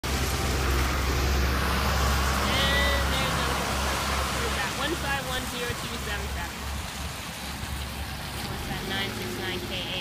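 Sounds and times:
traffic on wet road: 0.0 - 10.0.

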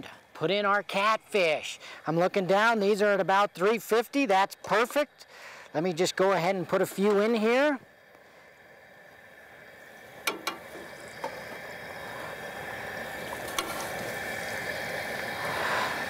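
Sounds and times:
fish frying in hot oil: 2.6 - 16.0.

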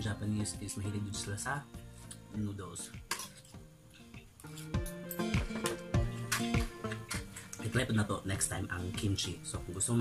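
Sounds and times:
guitar background music: 0.0 - 10.0
cutlery clinking on a plate: 3.1 - 3.5.

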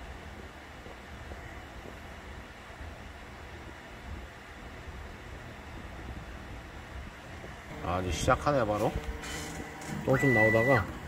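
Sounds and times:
printer fans humming: 0.0 - 11.0.

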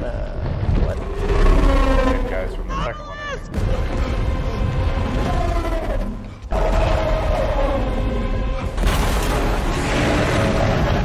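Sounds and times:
heavy low rumble: 3.5 - 11.0.

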